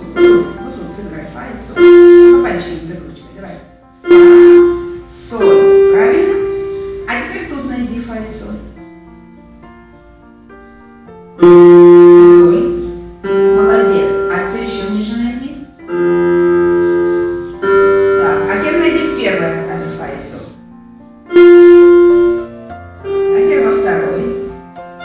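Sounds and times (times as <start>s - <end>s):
electronic keyboard single notes: 0.0s - 3.2s, 4.0s - 7.5s, 11.4s - 25.0s.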